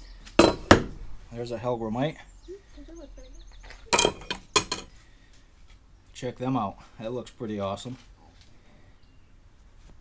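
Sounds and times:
metal mold plates clinking: 3.9 - 4.9.

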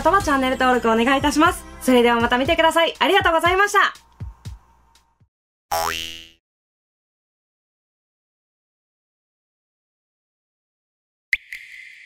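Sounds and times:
cartoon springy boing: 5.7 - 6.4.

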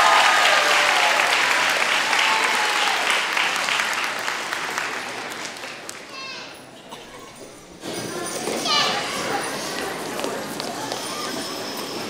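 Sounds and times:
hubbub of voices: 0.0 - 12.0
high child's voice: 5.9 - 6.6, 8.4 - 9.5.

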